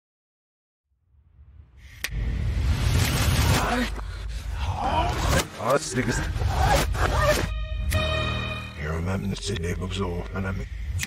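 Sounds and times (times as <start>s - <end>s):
low music bed: 4.0s - 11.0s
held musical chord: 7.5s - 9.5s.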